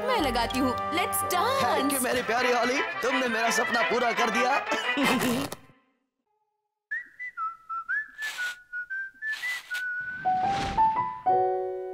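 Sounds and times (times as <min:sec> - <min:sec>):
whistled tune: 0:06.9 - 0:11.2
hissy swishes: 0:09.3 - 0:11.1.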